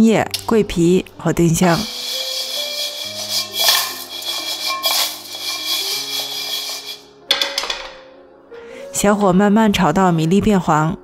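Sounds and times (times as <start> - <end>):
soft background music: 0.0 - 11.0
rice rattling in a wok: 1.7 - 7.0.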